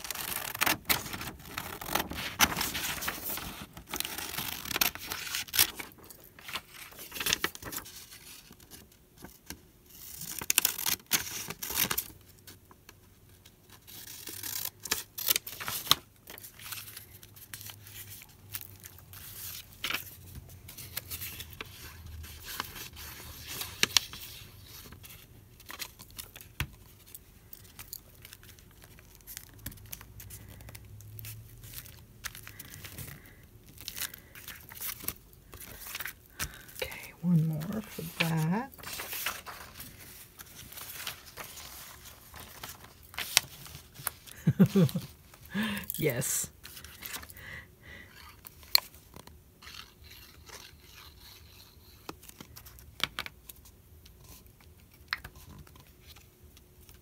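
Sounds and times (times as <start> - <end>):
paper rustling and crinkling: 0.0 - 47.3.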